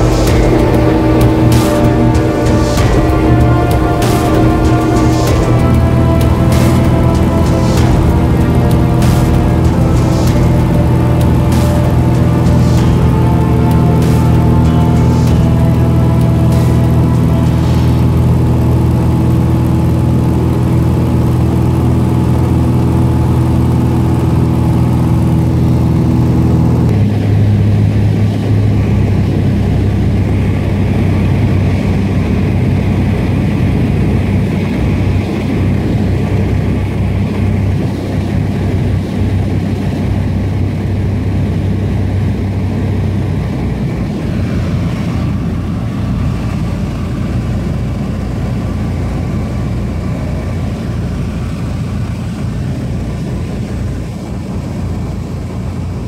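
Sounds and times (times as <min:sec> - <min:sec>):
background music: 0:00.0 - 0:54.0
small plane engine drone: 0:00.0 - 0:56.0.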